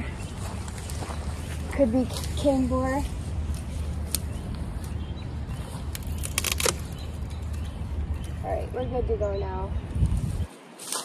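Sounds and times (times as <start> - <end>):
cane snapping: 5.9 - 7.6.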